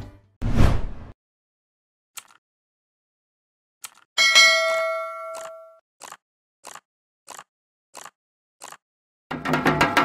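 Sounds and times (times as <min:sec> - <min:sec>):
metallic bell ding: 0:04.2 - 0:05.8.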